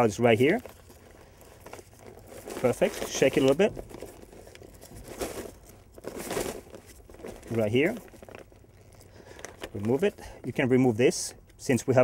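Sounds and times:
kite fabric crinkling and rustling: 0:00.0 - 0:12.0.

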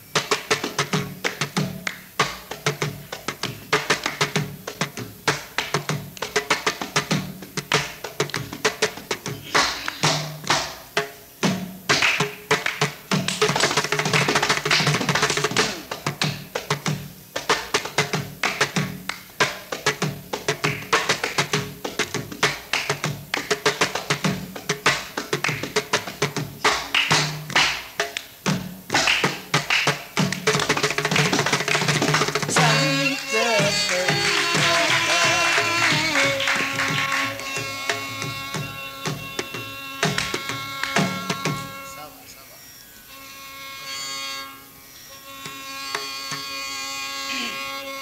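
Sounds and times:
mridangam drum strokes: 0:00.0 - 0:48.0.

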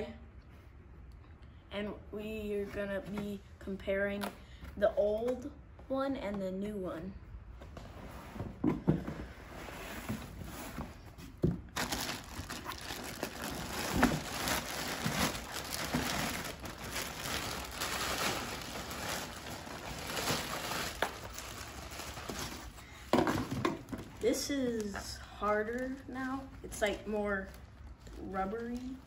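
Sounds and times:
plastic bag crinkling: 0:11.7 - 0:29.0.

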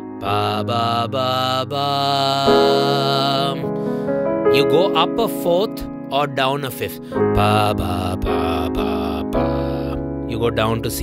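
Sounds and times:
sustained piano chord: 0:00.0 - 0:11.0
man singing held notes: 0:00.2 - 0:03.8, 0:04.5 - 0:11.0.

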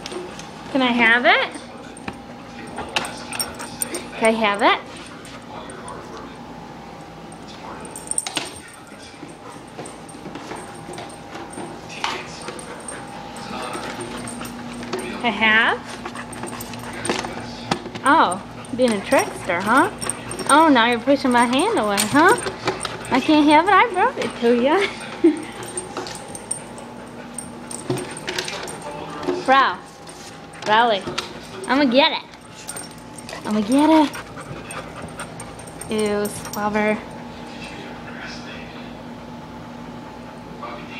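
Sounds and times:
dog panting: 0:12.4 - 0:15.1, 0:15.8 - 0:17.3, 0:30.0 - 0:36.6.

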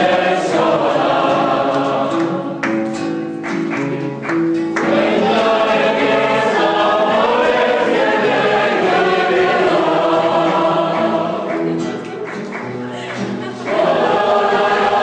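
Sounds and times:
group of people singing: 0:00.0 - 0:02.8, 0:04.8 - 0:12.1, 0:12.9 - 0:15.0
strummed acoustic guitar: 0:00.0 - 0:15.0.

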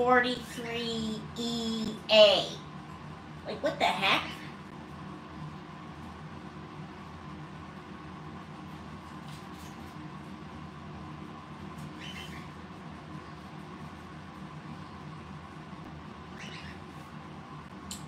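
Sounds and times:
low room hum: 0:00.0 - 0:18.0
parrot calls: 0:11.9 - 0:12.6, 0:16.3 - 0:17.0.

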